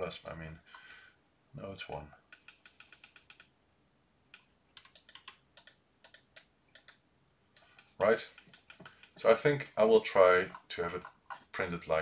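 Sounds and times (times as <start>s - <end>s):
keyboard keys clicking: 2.3s - 3.5s, 4.3s - 7.0s.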